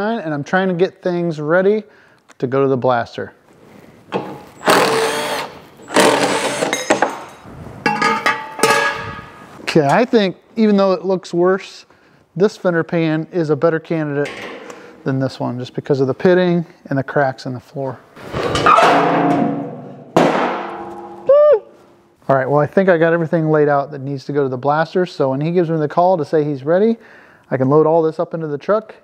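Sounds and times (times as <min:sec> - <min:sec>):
cordless drill bursts: 0:04.6 - 0:06.8
metal pan clanging on concrete: 0:07.9 - 0:09.2, 0:18.8 - 0:21.3.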